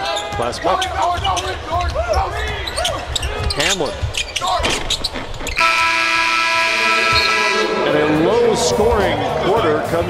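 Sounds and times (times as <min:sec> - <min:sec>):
game clock horn buzz: 0:05.6 - 0:08.0.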